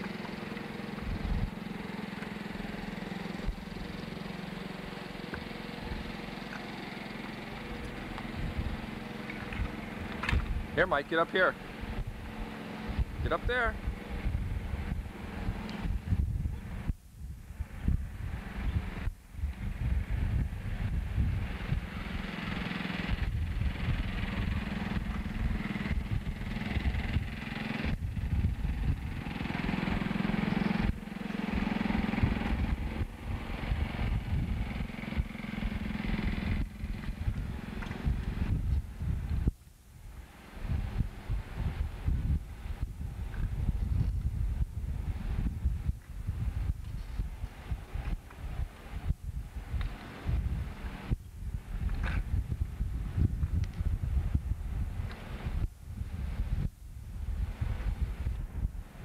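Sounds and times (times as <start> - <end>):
microphone rumble: 0.0 - 1.6, 7.5 - 59.0
distant engine running: 0.0 - 59.0.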